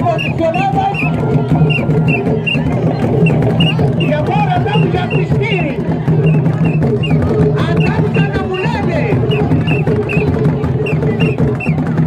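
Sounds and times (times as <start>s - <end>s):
voices singing: 0.0s - 11.8s
steady drum rhythm: 0.0s - 12.0s.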